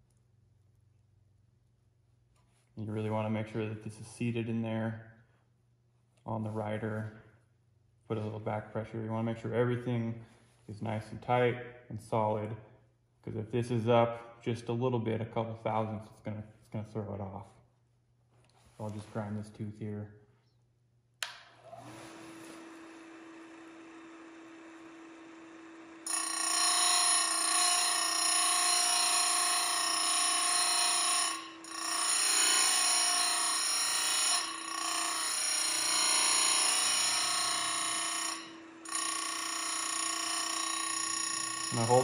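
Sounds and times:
grinding wheel on metal: 26.0 - 42.0.

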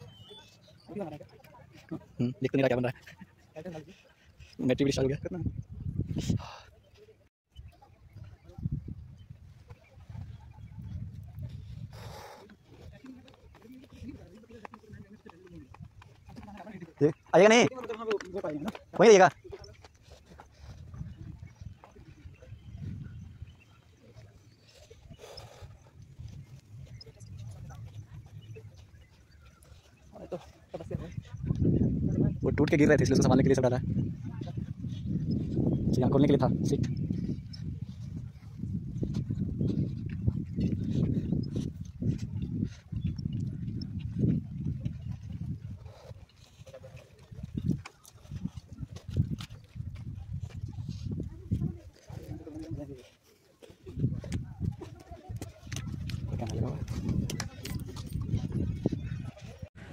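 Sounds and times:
wind buffeting microphone: 4.3 - 6.7, 7.5 - 59.9.

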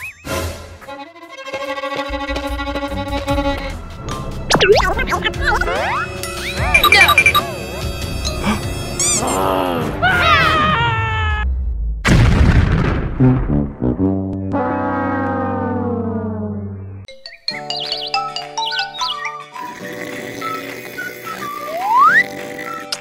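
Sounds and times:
cartoon descending tones: 4.5 - 7.4
cartoon bomb explosion: 12.0 - 16.3
light children's music: 17.1 - 23.0.

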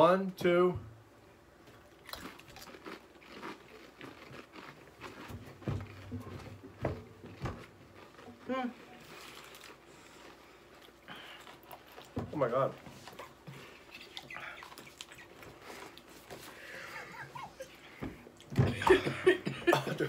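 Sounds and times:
people crunching chips: 1.9 - 6.6, 7.3 - 12.2, 13.1 - 16.9.

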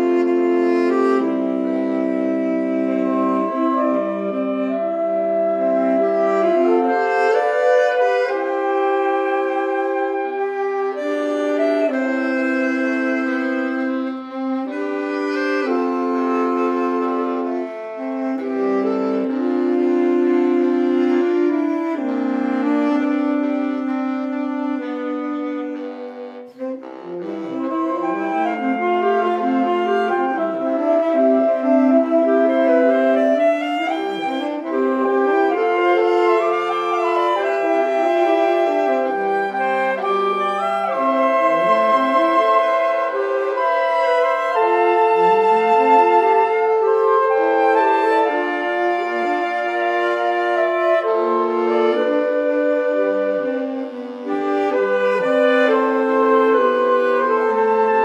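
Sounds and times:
saxophone ensemble playing: 0.0 - 58.0.

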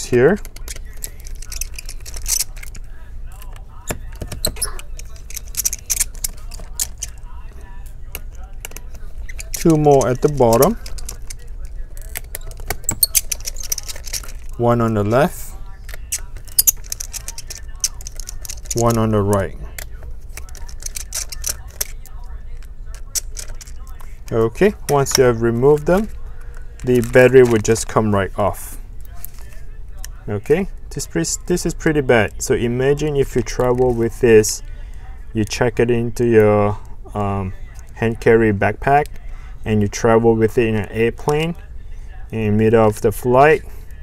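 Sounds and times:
low steady hum: 0.0 - 44.0.

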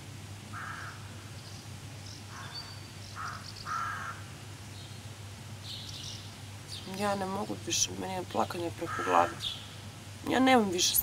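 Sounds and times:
steady low hum: 0.0 - 11.0
crow cawing: 0.5 - 1.2, 2.3 - 4.3, 8.8 - 9.6.

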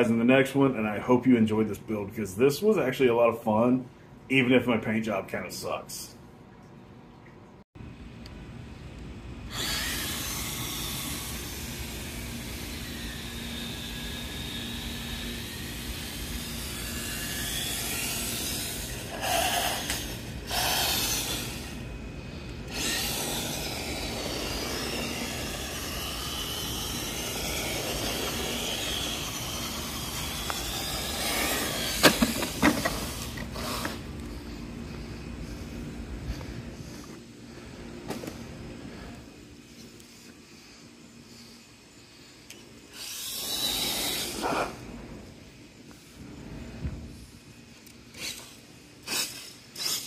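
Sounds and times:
electric motor whining: 9.5 - 37.0, 42.5 - 45.6
toy truck knocking over: 30.3 - 33.2.

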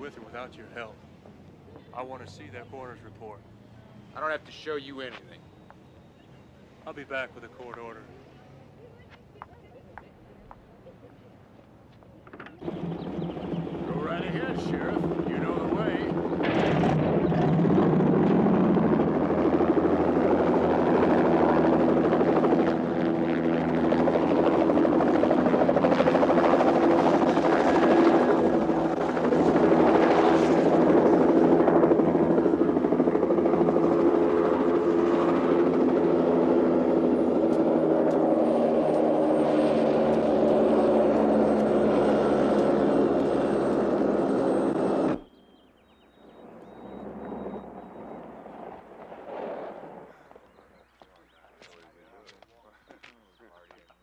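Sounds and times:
helicopter rotor and turbine: 12.3 - 53.9.

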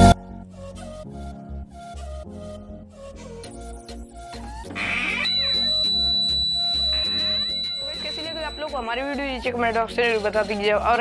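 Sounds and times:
background music: 0.0 - 11.0
high-pitched buzzer tone: 4.8 - 9.2.

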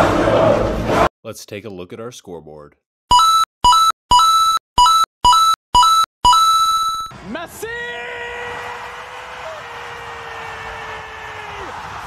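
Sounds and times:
stadium crowd cheering: 7.1 - 12.0.

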